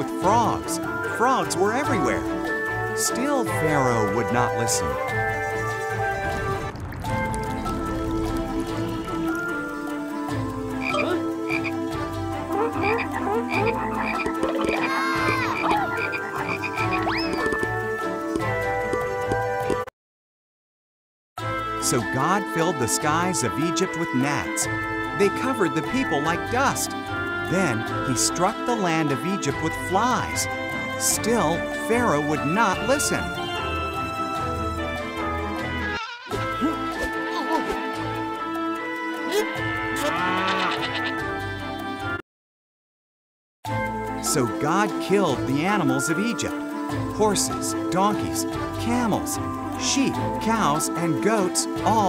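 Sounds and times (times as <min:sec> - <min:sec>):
background music: 0:00.0 - 0:19.8, 0:21.4 - 0:42.2, 0:43.7 - 0:52.0
cartoon frog croaks: 0:10.8 - 0:11.8, 0:12.5 - 0:17.6
cartoon cow mooing: 0:10.9 - 0:11.3, 0:35.8 - 0:37.6, 0:39.6 - 0:41.2.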